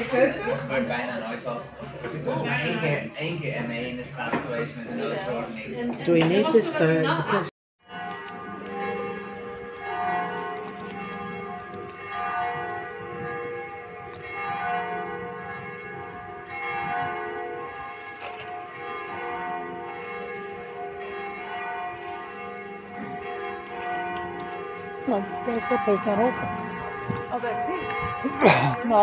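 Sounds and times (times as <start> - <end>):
church bells ringing: 0.0 - 29.0.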